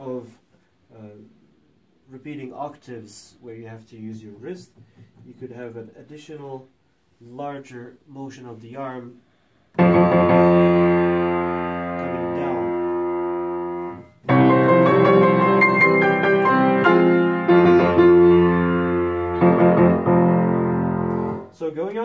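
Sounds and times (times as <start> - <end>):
loud piano chords: 9.8 - 21.6.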